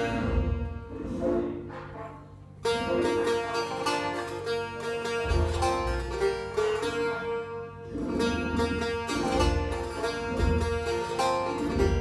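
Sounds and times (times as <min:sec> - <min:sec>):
long-necked lute plucked notes: 0:00.0 - 0:12.0.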